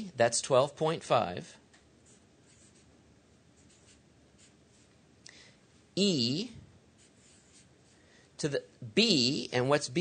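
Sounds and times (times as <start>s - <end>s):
marker pen scratching on paper: 2.0s - 5.0s, 6.9s - 8.0s.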